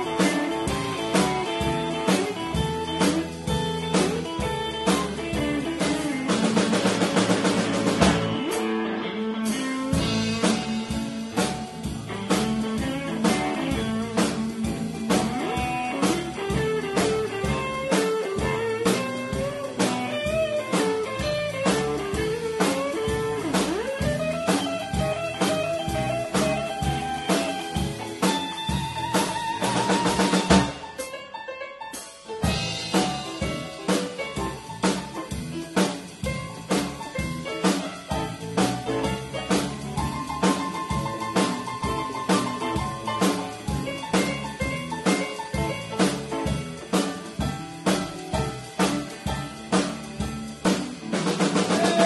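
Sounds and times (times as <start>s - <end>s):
drum kit: 0.0s - 52.0s
electric guitar: 0.0s - 52.0s
keyboard: 0.0s - 52.0s.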